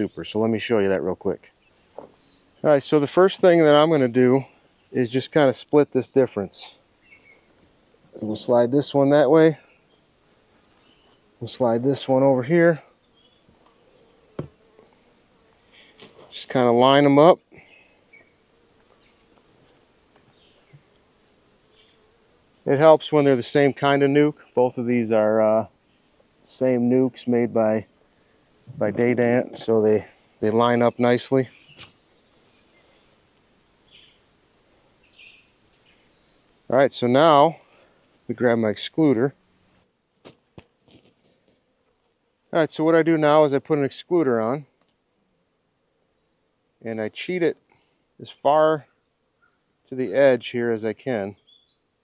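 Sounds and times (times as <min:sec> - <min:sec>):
honeybees buzzing: 0:00.0 - 0:43.4.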